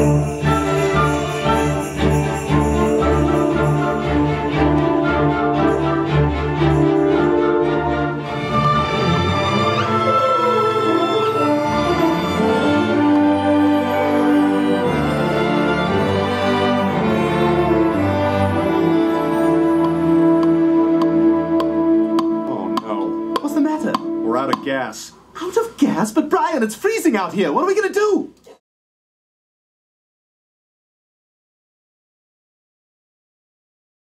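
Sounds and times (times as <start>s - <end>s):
orchestra playing sustained chords: 0.0s - 25.0s
person speaking: 22.2s - 28.6s.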